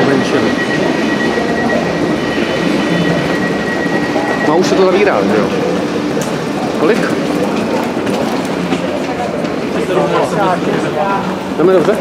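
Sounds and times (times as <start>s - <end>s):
high-pitched tone from train: 0.0s - 7.2s
people's voices: 0.0s - 12.0s.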